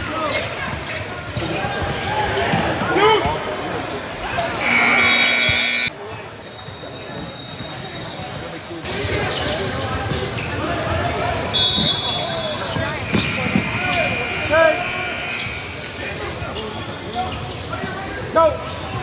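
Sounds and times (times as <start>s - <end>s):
sneakers squeaking on court: 0.0s - 14.4s
players and spectators voices: 0.0s - 19.0s
shrill steady tone: 4.6s - 5.9s.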